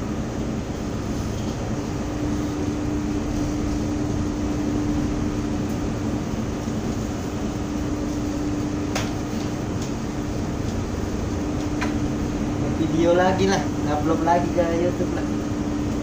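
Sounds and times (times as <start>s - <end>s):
wind and sea rushing: 0.0s - 12.8s
low machinery hum: 0.0s - 16.0s.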